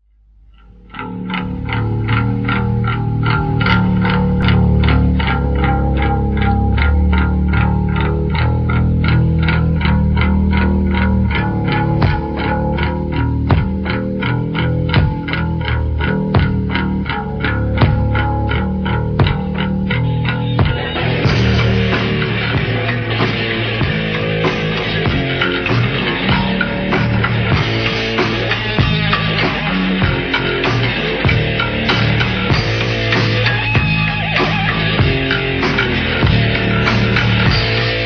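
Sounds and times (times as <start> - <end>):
sustained bass guitar notes: 0.0 - 38.0
distorted electric guitar pulsing: 0.2 - 38.0.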